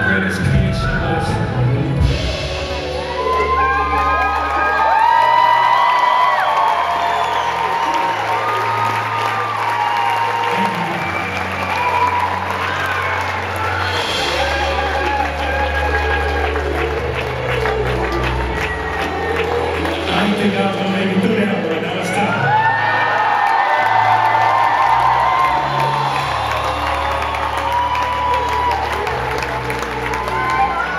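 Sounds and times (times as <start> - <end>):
orchestra and band playing: 0.0 - 4.9, 10.5 - 22.4
audience applauding and cheering: 0.0 - 30.9.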